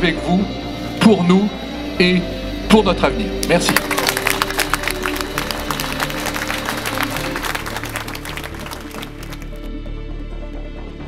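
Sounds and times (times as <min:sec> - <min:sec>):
background music: 0:00.0 - 0:11.0
crowd clapping: 0:03.4 - 0:09.7.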